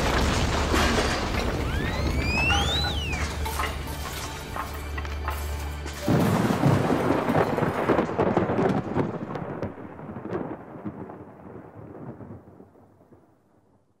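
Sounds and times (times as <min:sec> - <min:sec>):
loud crash with crackling rumble: 0:00.0 - 0:05.1, 0:05.8 - 0:12.5.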